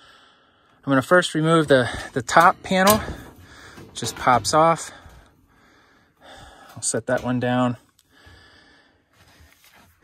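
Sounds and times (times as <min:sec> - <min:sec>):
person breathing: 0:00.0 - 0:00.8, 0:03.0 - 0:04.0, 0:04.8 - 0:06.8, 0:08.0 - 0:09.8.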